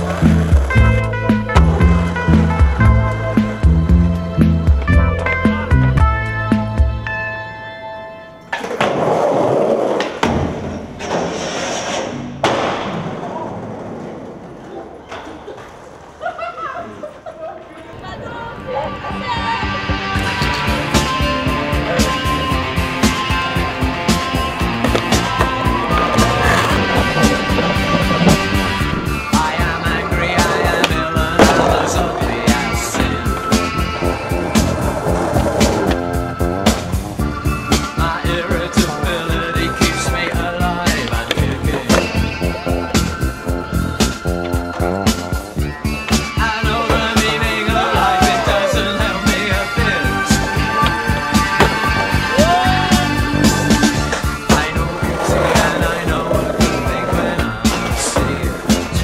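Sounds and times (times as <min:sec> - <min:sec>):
skateboard rolling on paving: 0:00.0 - 0:03.7, 0:08.6 - 0:10.2, 0:20.2 - 0:59.0
rock music with steady beat: 0:19.9 - 0:59.0
skateboard clacks: 0:21.9 - 0:37.0, 0:38.8 - 0:59.0.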